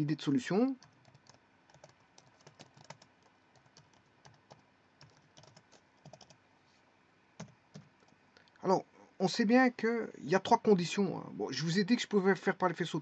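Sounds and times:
faint keyboard typing: 0:00.7 - 0:06.4, 0:07.4 - 0:08.6.

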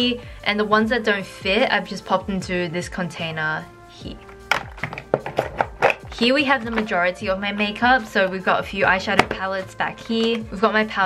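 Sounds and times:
background music: 0:00.0 - 0:11.0
light knocks of plastic items: 0:04.3 - 0:06.9.

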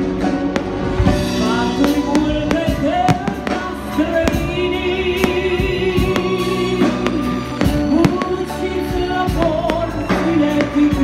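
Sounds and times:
fireworks bursting: 0:00.0 - 0:11.0
loud music with singing: 0:00.0 - 0:11.0.

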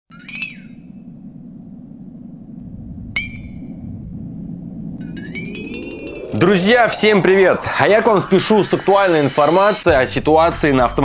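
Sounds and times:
low drone: 0:00.2 - 0:09.9.

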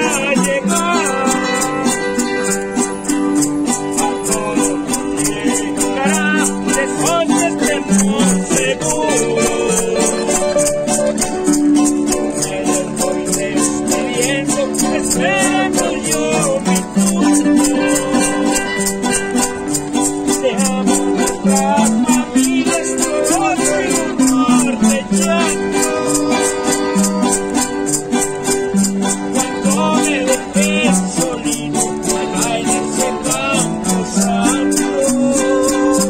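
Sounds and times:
acoustic guitar melodic runs: 0:00.0 - 0:36.0
acoustic guitar strumming: 0:00.0 - 0:36.0
high rattling beat: 0:00.0 - 0:36.0.

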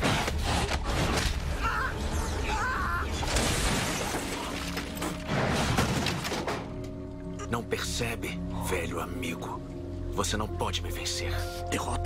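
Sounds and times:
dramatic film score: 0:00.0 - 0:12.0
glass breaking and crunching: 0:03.2 - 0:06.7.

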